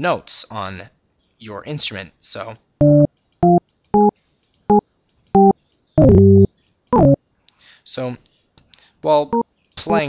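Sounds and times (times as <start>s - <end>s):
short synth notes: 2.8s - 4.1s, 5.4s - 7.2s.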